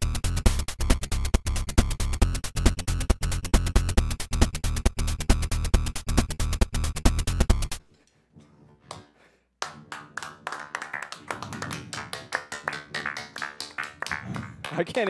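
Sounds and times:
hand clapping: 8.9s - 15.0s.

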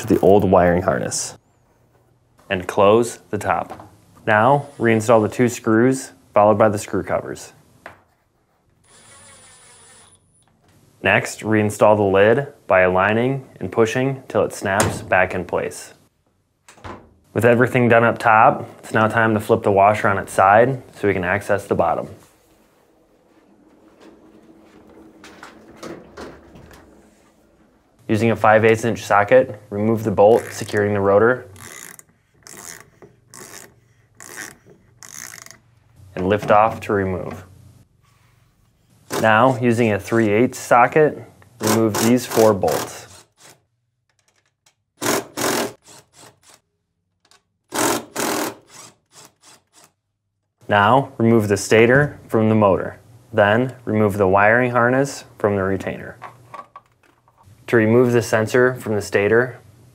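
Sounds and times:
cordless drill whining: 8.9s - 10.3s.

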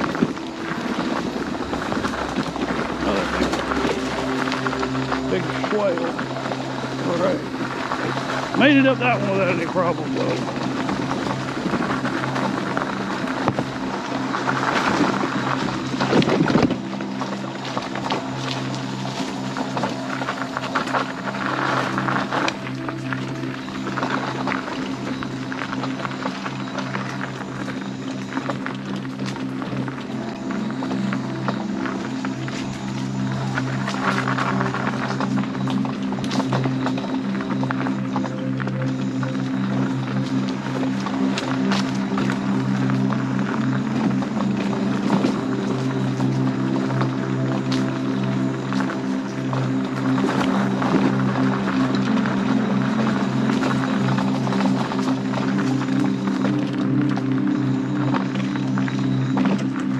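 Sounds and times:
electric scooter motor humming: 0.0s - 59.9s.

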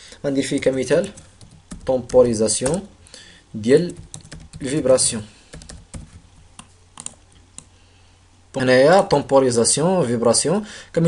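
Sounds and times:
person speaking: 0.2s - 7.7s, 8.5s - 11.0s.

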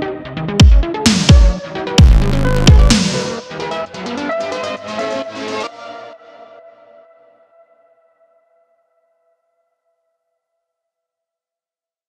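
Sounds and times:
synth chord ringing out: 2.0s - 3.5s.

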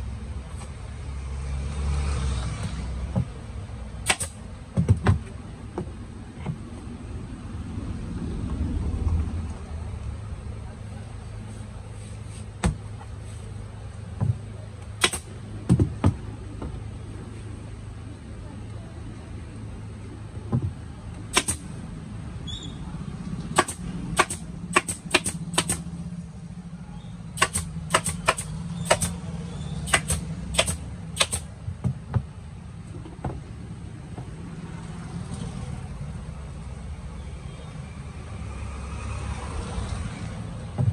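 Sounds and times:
pneumatic staple gun firing: 4.0s - 4.4s, 15.0s - 15.3s, 21.3s - 21.6s, 23.6s - 25.8s, 27.4s - 29.2s, 29.9s - 31.5s.

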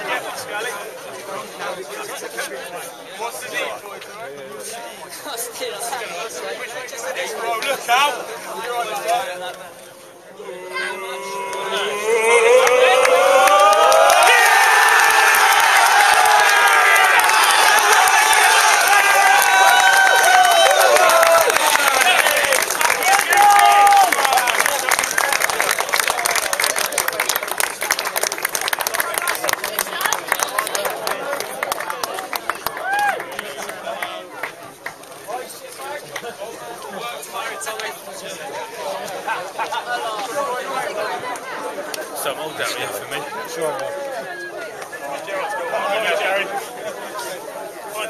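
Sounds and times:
crowd cheering and shouting: 10.4s - 25.0s, 32.6s - 33.5s
crowd clapping: 11.2s - 38.0s.

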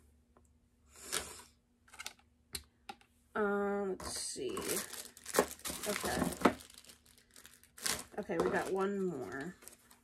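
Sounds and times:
packaging rustle: 4.5s - 10.0s.

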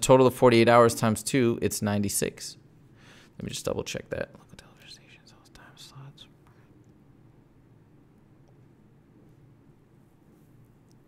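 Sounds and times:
man whispering: 3.4s - 6.7s.

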